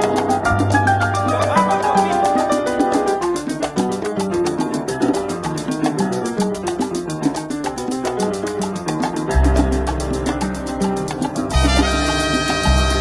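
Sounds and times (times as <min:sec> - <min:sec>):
piano lines: 0:00.0 - 0:13.0
sharp percussion ticks: 0:00.0 - 0:13.0
bass line: 0:09.3 - 0:13.0.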